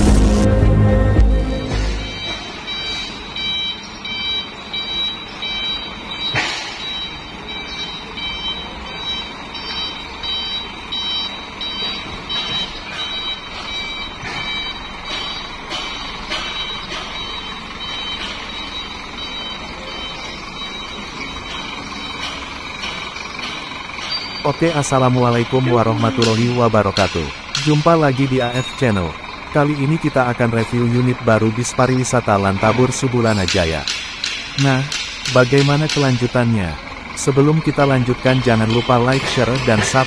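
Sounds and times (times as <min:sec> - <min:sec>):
vehicle reversing alarm beeping: 0:00.7 - 0:40.0.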